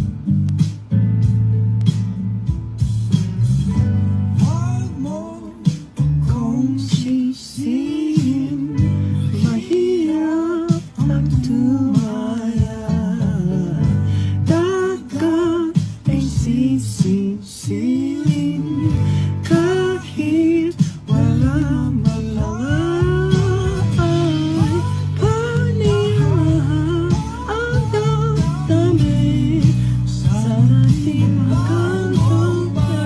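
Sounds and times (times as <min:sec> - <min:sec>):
guitar accompaniment: 0:00.0 - 0:33.0
young man singing ballad: 0:04.3 - 0:33.0.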